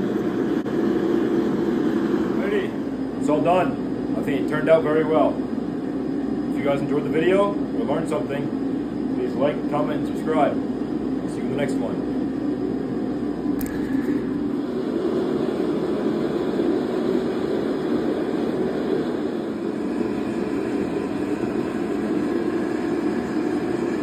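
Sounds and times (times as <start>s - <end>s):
machinery roaring: 0.0s - 4.5s.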